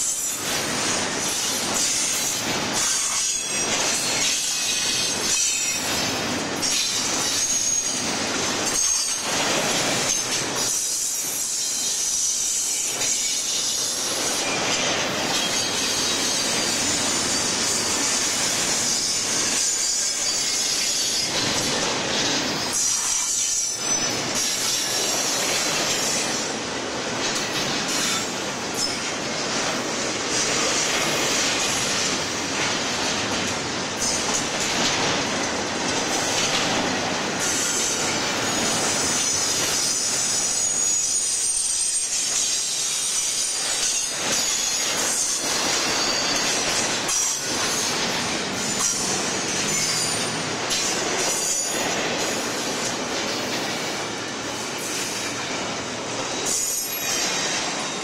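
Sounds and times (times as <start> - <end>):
train wheels clattering on rails: 0.0 - 58.0
high-pitched wheel squeal: 39.8 - 42.8.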